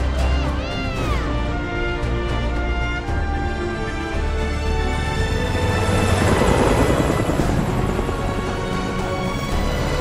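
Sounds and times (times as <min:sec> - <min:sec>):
film score music: 0:00.0 - 0:10.0
helicopter rotor chop: 0:04.9 - 0:10.0.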